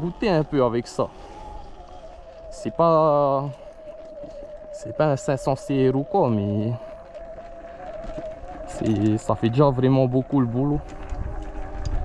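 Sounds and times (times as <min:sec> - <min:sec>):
man talking: 0:00.0 - 0:01.1, 0:02.5 - 0:03.6, 0:04.8 - 0:06.8, 0:08.7 - 0:10.8
electric motor whine: 0:00.0 - 0:12.0.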